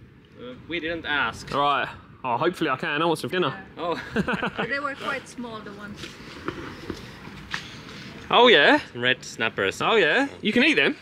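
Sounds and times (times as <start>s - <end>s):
faint outdoor hum: 0.0s - 11.0s
footsteps on asphalt: 5.7s - 8.3s.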